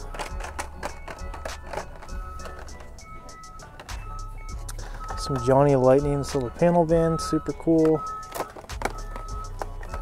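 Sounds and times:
held melody notes: 0.0 - 10.0.

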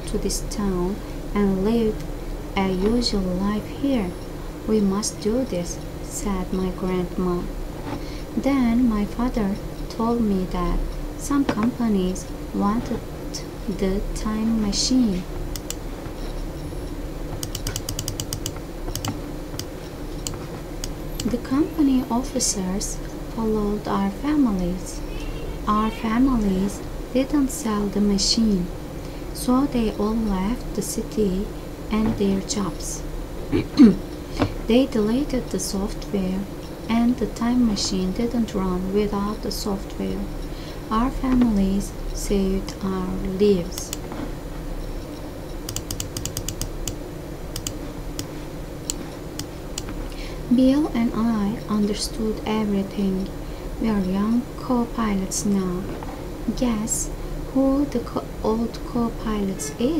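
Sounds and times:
steady low hum: 0.0 - 59.9
quick sharp computer clicks: 17.4 - 21.3, 45.7 - 47.0, 47.6 - 47.8.

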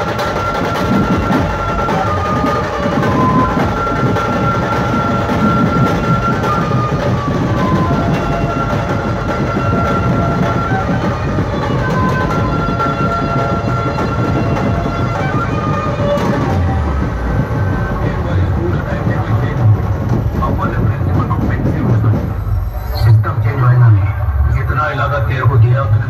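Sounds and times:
band music over horn loudspeakers: 0.0 - 22.3.

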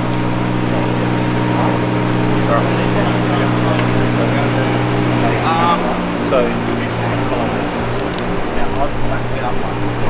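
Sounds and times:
faint voices: 0.0 - 10.0
low mechanical hum: 0.0 - 10.0.

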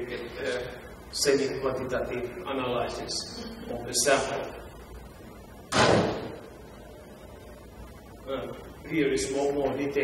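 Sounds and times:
sudden bang: 5.7 - 6.4.

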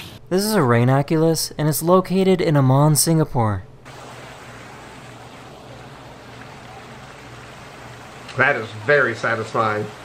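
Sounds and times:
low steady hum: 0.1 - 10.0
water rushing and swirling: 3.9 - 10.0.

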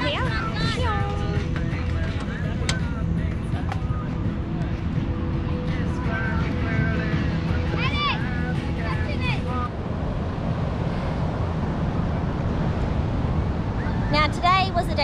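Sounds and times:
wind buffeting microphone: 0.0 - 15.0
surf washing on beach: 5.7 - 15.0.

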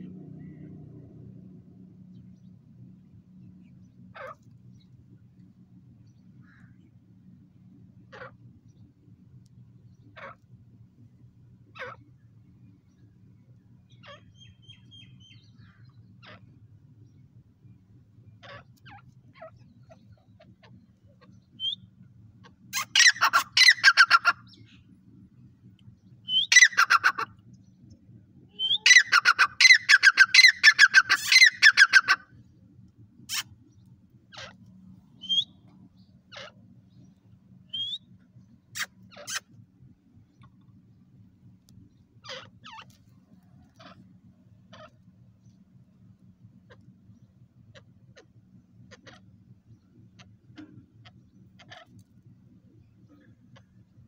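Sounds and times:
faint low hum: 0.0 - 54.0
bird harsh repeated calls: 4.2 - 4.4, 10.1 - 10.4, 22.4 - 24.8, 26.3 - 27.4, 28.5 - 32.4, 33.3 - 33.6, 35.2 - 35.6, 37.7 - 38.0, 38.7 - 39.5, 42.2 - 42.9
bird short rising chirp: 28.5 - 29.1, 35.2 - 35.7, 37.7 - 38.1.

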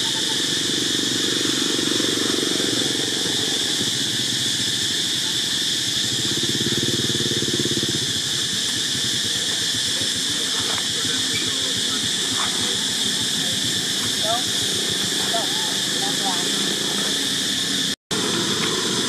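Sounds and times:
high-pitched hiss: 0.0 - 19.0
motorcycle engine rumbling: 0.0 - 19.0.

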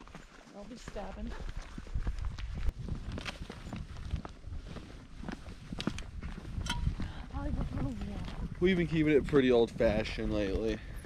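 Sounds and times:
footsteps on pavement: 0.0 - 11.0
wind rumble: 1.3 - 11.0
microphone handling noise: 5.7 - 8.6.

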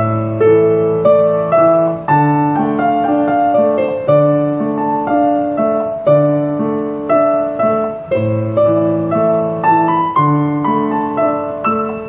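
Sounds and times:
piano hymn: 0.0 - 12.0.

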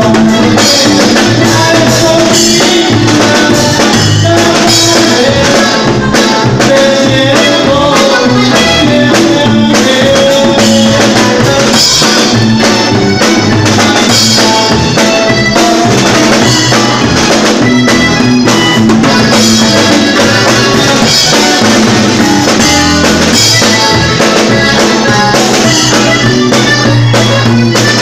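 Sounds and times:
accordion: 0.0 - 28.0
drum kit beat: 0.0 - 28.0.

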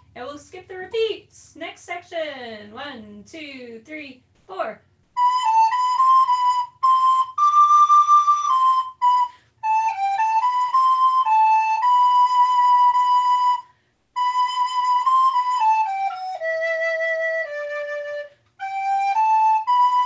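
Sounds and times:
solo recorder melody: 5.2 - 20.0.

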